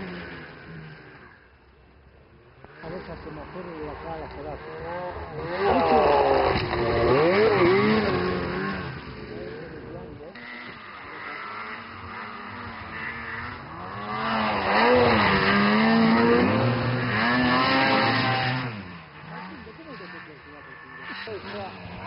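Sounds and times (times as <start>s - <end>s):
snowmobile engines revving: 0.0s - 22.0s.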